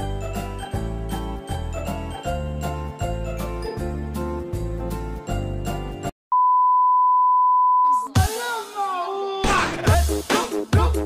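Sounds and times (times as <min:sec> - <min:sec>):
steady test tone beep: 0:06.3 - 0:08.1.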